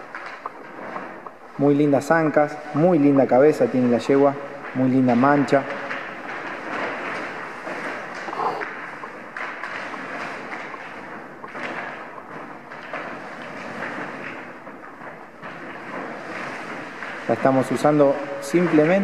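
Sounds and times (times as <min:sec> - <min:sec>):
plastic sheet rustling and crackling: 0:00.0 - 0:19.0.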